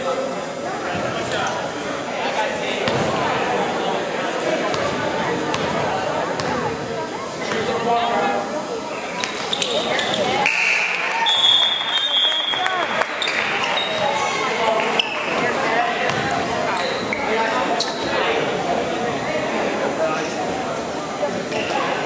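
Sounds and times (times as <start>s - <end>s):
spectators' voices and calls: 0.0s - 22.0s.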